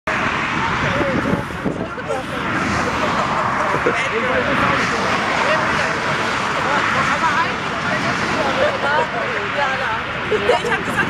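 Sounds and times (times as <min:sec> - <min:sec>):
group of people talking: 0:00.1 - 0:11.0
loud steady rushing noise: 0:00.1 - 0:11.0.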